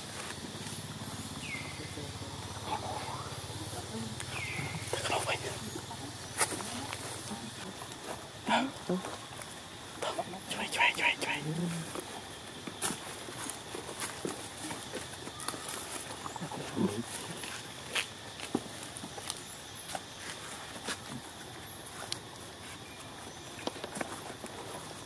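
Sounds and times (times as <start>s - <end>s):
steady hiss: 0.0s - 25.0s.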